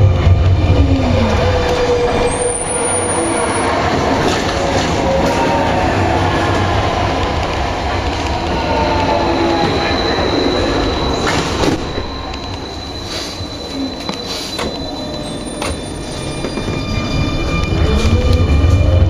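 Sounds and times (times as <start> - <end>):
train wheels rumbling on rail: 0.0 - 19.0
wavering squeal: 0.3 - 6.0, 8.5 - 19.0.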